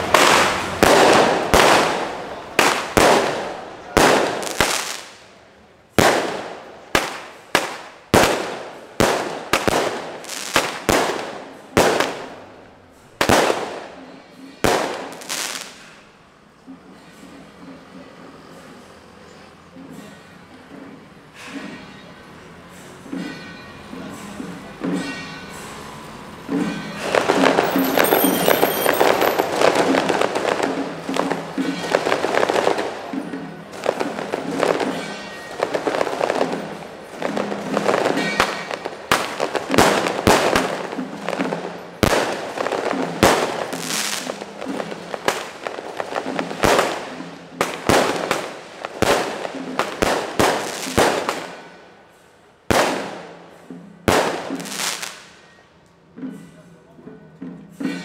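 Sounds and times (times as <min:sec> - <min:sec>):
loud firecracker bangs: 0:00.0 - 0:16.1, 0:24.4 - 0:55.6
firecrackers crackling: 0:00.0 - 0:16.3, 0:24.2 - 0:55.6.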